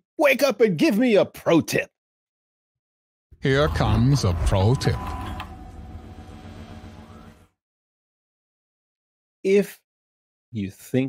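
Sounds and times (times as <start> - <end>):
low hum: 3.4 - 7.5.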